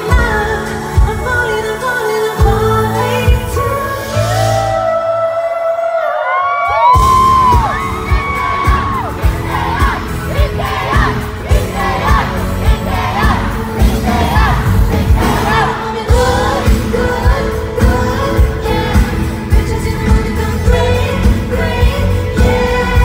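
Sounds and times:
woman singing over dance beat: 0.0 - 6.4, 7.6 - 23.0
crowd noise: 0.0 - 23.0.

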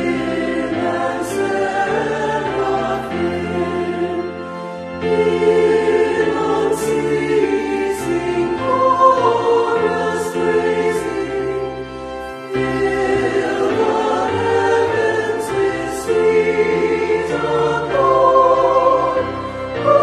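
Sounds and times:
choir singing a hymn: 0.0 - 20.0.

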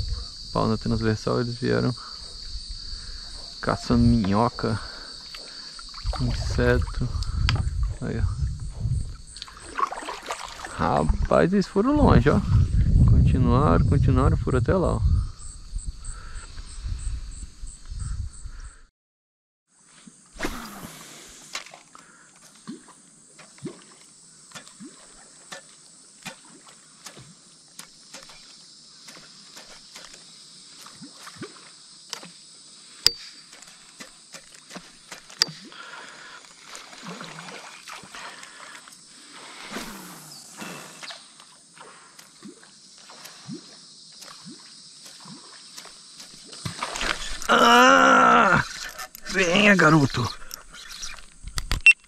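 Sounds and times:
water sloshing around kayak: 2.2 - 8.0, 8.6 - 11.3, 33.5 - 47.5
high-pitched insect buzz: 20.0 - 35.6, 38.5 - 52.0.

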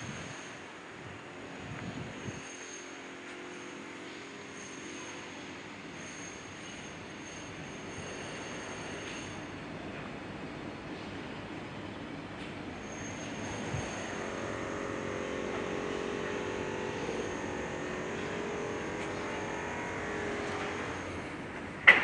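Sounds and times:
distant engine hum: 7.8 - 22.0.

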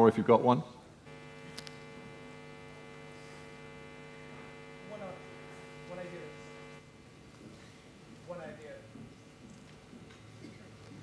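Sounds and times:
electrical mains hum: 0.9 - 11.0.

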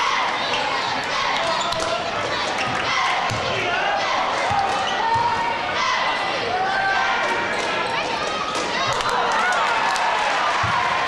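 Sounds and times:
spectators babbling and shouting: 0.0 - 11.0.

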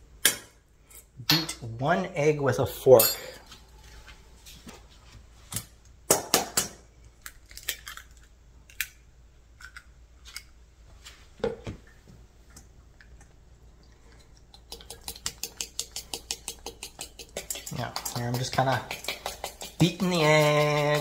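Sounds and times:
egg cracking on metal bowl: 6.1 - 9.0, 14.1 - 21.0
fork beating egg in metal bowl: 14.1 - 21.0
fork tapping metal bowl: 15.0 - 21.0.

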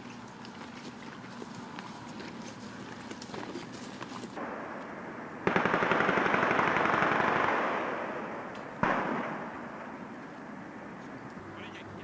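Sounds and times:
automatic gunfire: 5.4 - 9.6
single gunshot: 8.7 - 9.7.

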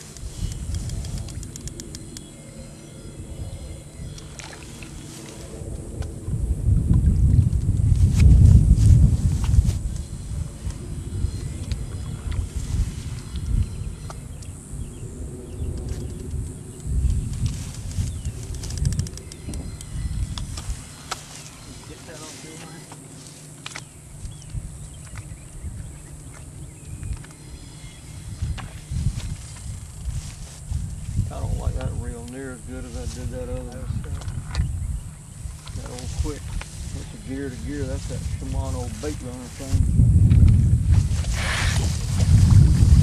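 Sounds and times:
wind buffeting microphone: 0.0 - 43.0
faint clicks: 0.1 - 2.3.

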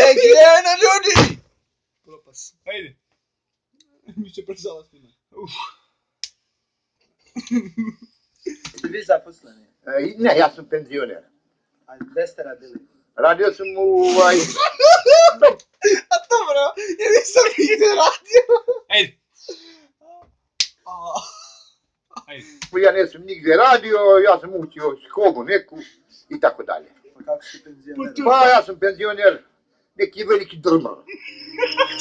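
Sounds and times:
faint voices: 0.0 - 1.4, 31.1 - 32.0
hand slapping face: 8.5 - 9.0, 20.6 - 20.8
person vocal sound: 14.0 - 14.7, 16.8 - 18.3.

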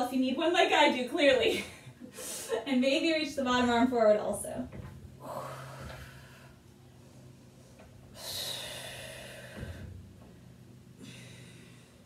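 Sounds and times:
woman breathing hard: 5.2 - 6.6, 8.0 - 10.0, 10.9 - 12.0.

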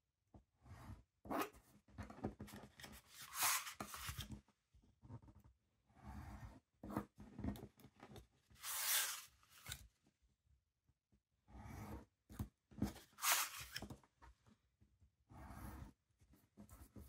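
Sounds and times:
craft knife cutting paper: 2.8 - 4.2, 8.6 - 9.9, 13.0 - 13.8
paper handling: 2.8 - 4.2, 13.2 - 13.8.

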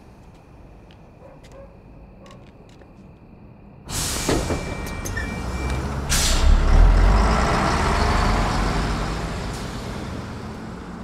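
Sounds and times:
heavy vehicle engine rumble: 3.8 - 11.0
air brakes hissing: 3.9 - 6.8.

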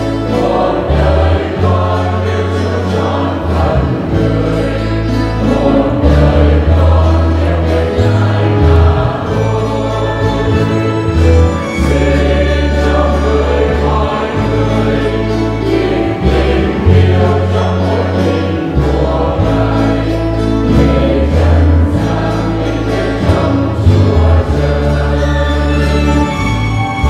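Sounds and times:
electronic keyboard: 0.0 - 27.0
guitars: 0.0 - 27.0
mixed choir singing a hymn: 0.0 - 27.0.

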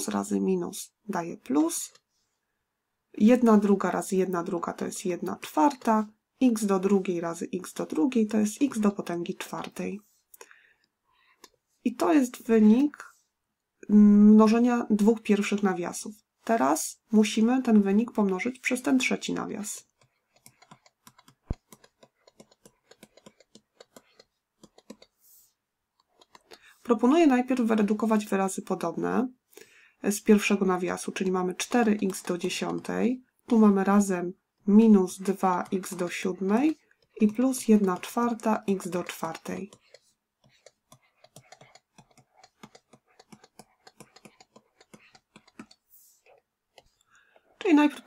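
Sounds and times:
person speaking: 0.0 - 2.0, 3.1 - 10.4, 11.3 - 13.2, 13.8 - 25.5, 26.2 - 48.0
stylus tapping on tablet: 5.2 - 6.1, 7.8 - 9.8, 17.3 - 25.2, 26.0 - 26.7, 30.4 - 34.0, 34.8 - 48.0.

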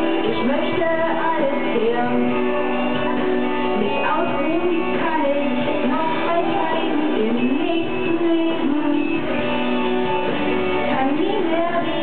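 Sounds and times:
voices singing into microphones: 0.0 - 9.4
guitar accompaniment: 0.0 - 12.0.

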